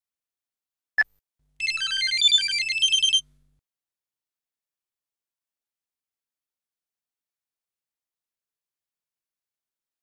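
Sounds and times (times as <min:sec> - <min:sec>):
electronic ringtone melody: 0:01.6 - 0:03.2.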